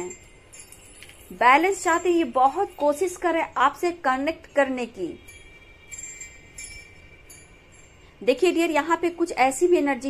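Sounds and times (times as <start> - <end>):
faint high chime tones: 4.5 - 8.4.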